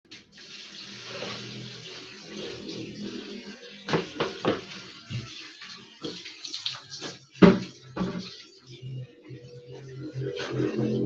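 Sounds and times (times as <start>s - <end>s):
water running from a tap: 0.1s - 8.8s.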